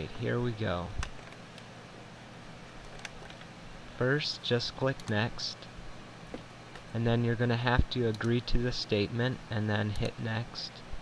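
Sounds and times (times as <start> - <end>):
room tone hum and hiss: 0.0 - 11.0.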